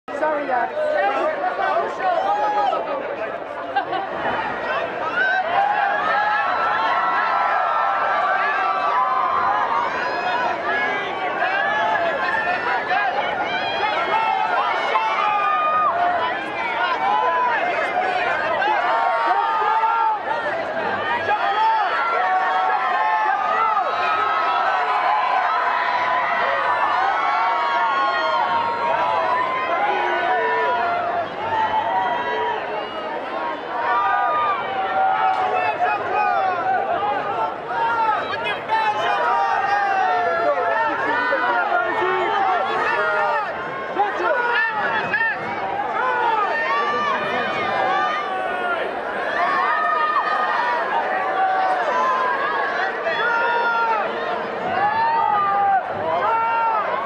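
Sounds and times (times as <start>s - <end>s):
crowd shouting: 0.1s - 57.0s.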